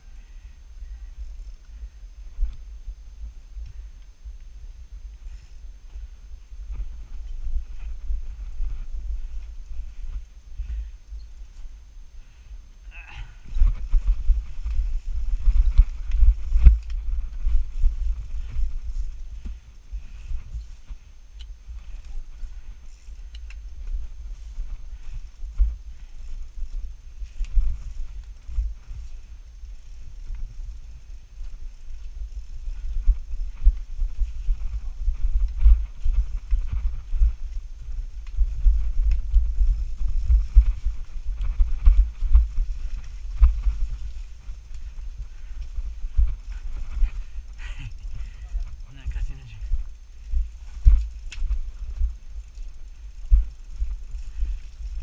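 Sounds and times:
bike rolling on dirt rumble: 0.2 - 55.0.

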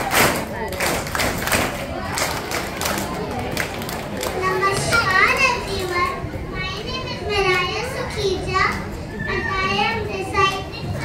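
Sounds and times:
children chattering and calling out: 1.6 - 11.0.

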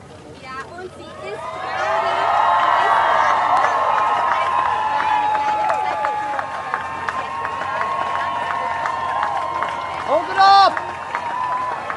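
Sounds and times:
crowd voices calling out: 1.1 - 11.9.

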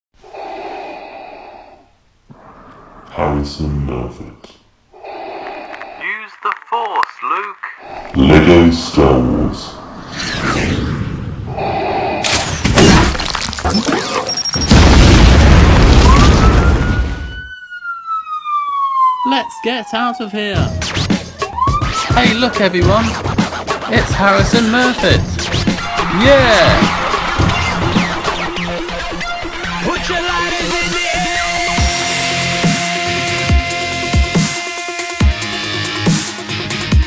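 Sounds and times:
loud crashing sound effects: 14.4 - 17.3, 25.5 - 33.6
big rumbling explosion: 14.6 - 17.3
siren rising and falling: 15.8 - 22.6, 25.7 - 35.4.

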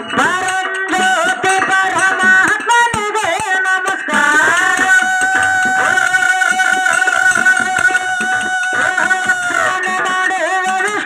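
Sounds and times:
hand drum beat: 0.0 - 11.0
harmonium: 0.0 - 11.0
voices singing folk song: 0.0 - 11.0.

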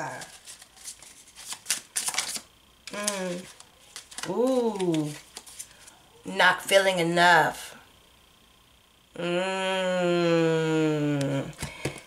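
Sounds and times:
cards being shuffled: 0.0 - 6.0.

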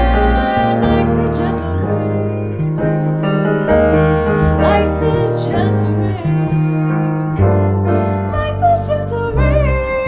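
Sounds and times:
piano chords: 0.0 - 10.0
upright double bass: 0.0 - 10.0.

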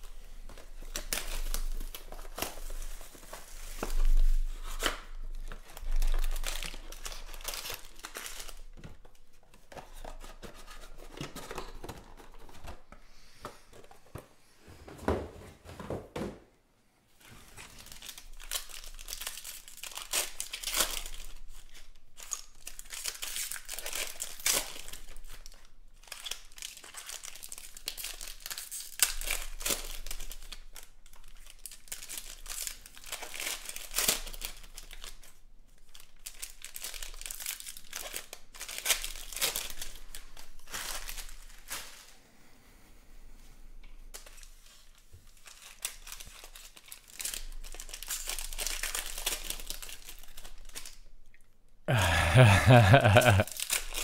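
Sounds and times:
foil wrappers crinkling and tearing: 0.0 - 12.8, 17.5 - 42.1, 44.1 - 51.1, 52.4 - 54.0.

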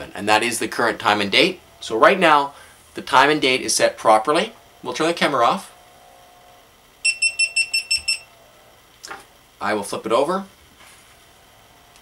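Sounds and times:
rapid high-pitched beeps: 7.0 - 8.3.

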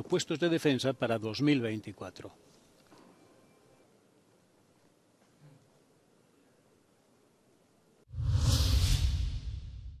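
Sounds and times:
rushing swoosh: 8.1 - 10.0.

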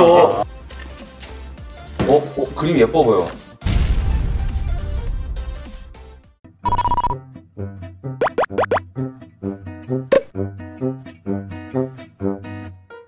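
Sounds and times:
short high beep: 6.7 - 7.2
bouncy plucked music: 7.1 - 12.8.

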